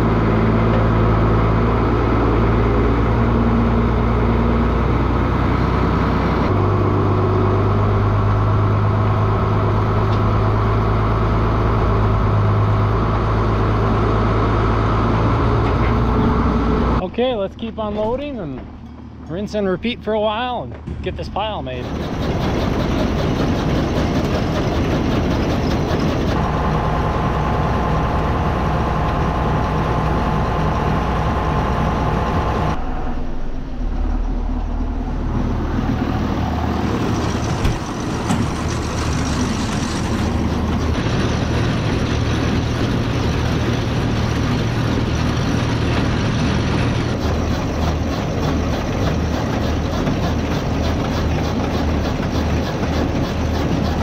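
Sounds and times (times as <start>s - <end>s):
elevator conveyor carrying silage: 0.0s - 54.0s
tractor engines running: 0.0s - 54.0s.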